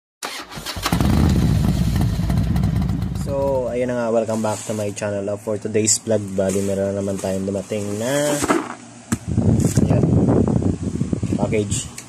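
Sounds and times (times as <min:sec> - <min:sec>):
engine pulsing rumble: 0:00.6 - 0:03.9
man's voice: 0:03.2 - 0:08.5.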